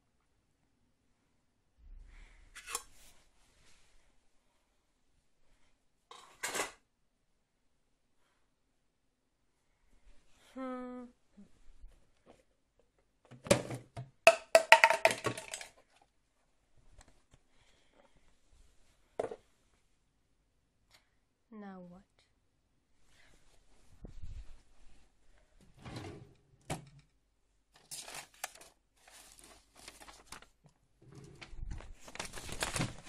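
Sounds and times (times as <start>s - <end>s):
plastic container clattering: 13.3s - 16.0s.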